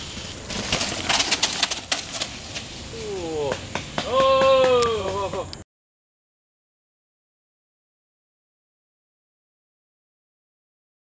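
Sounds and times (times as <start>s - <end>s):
bike jolting over ground: 0.0s - 5.3s
bike tyres crackling on leaves: 0.0s - 5.4s.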